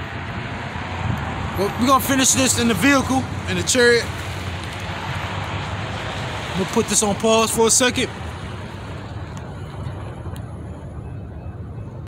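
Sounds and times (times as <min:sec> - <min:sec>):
road traffic rumble: 0:00.0 - 0:12.0.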